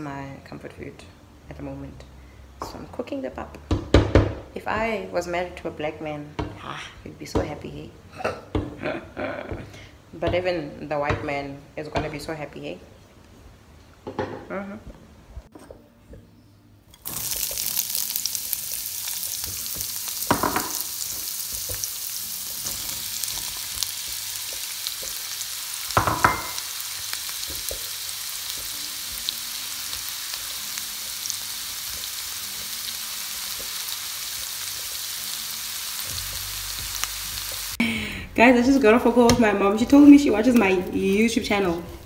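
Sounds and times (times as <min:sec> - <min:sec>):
vegetables sizzling in hot oil: 0:16.9 - 0:37.8.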